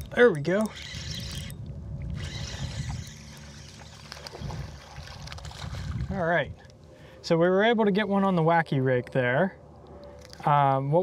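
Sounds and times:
spinning reel reeling in: 0:00.5 - 0:01.6, 0:02.2 - 0:05.5.

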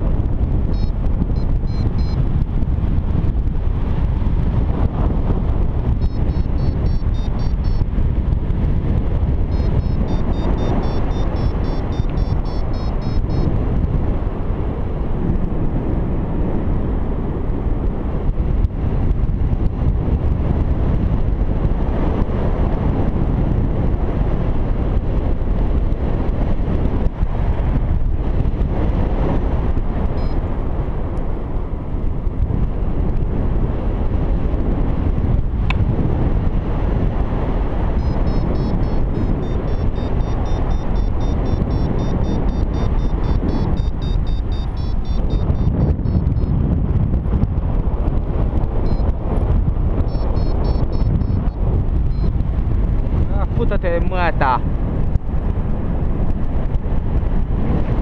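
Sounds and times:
wind rushing over microphone: 0:00.0 - 0:58.0
variometer beeping rapidly: 0:00.6 - 0:02.4, 0:05.2 - 0:13.8, 0:30.1 - 0:30.5, 0:37.8 - 0:47.2, 0:48.0 - 0:52.8.

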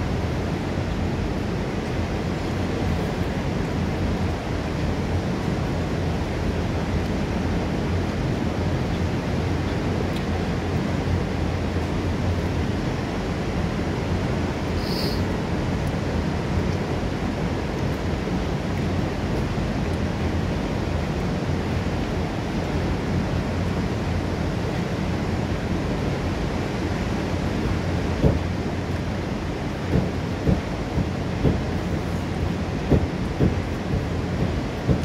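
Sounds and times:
waterfall rushing onto rocks: 0:00.0 - 0:35.0
short thumps: 0:28.2 - 0:28.4, 0:29.9 - 0:31.7, 0:32.9 - 0:35.0.

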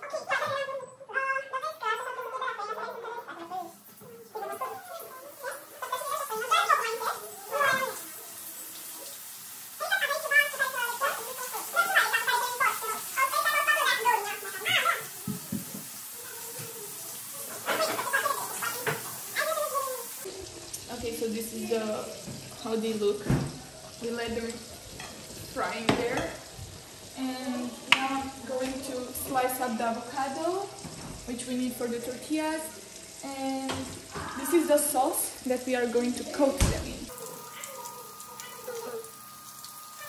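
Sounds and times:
people talking: 0:00.0 - 0:08.2, 0:09.8 - 0:15.7, 0:16.4 - 0:20.2, 0:20.9 - 0:23.4, 0:24.0 - 0:24.7, 0:25.5 - 0:26.4, 0:27.2 - 0:37.7
shrimp sizzling in oil: 0:03.7 - 0:40.0.

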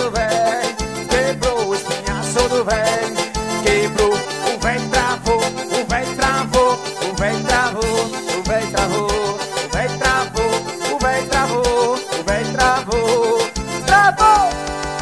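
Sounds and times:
band music with kick drum and bass: 0:00.0 - 0:15.0.

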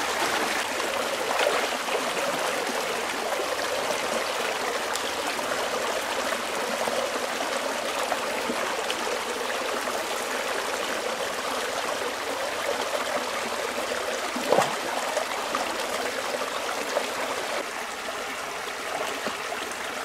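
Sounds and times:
small water cascade: 0:00.0 - 0:20.0
stream rushing over rocks: 0:00.0 - 0:20.0.

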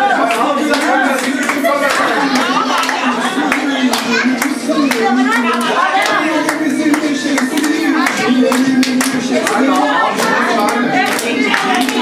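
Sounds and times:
people clapping in time: 0:00.0 - 0:12.0
voices: 0:00.0 - 0:12.0.

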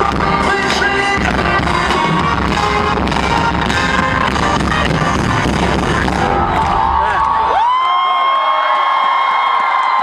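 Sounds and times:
band music: 0:00.0 - 0:07.5
crowd cheering: 0:00.0 - 0:10.0.

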